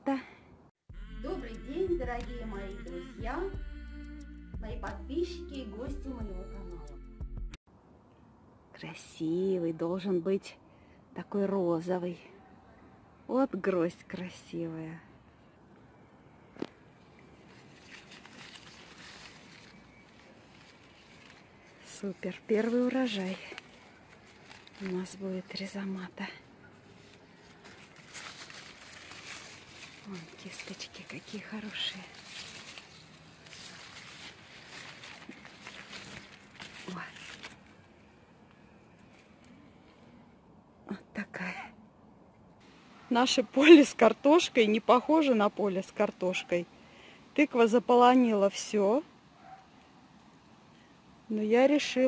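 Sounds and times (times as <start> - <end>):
light rustling: 16.5 - 37.9.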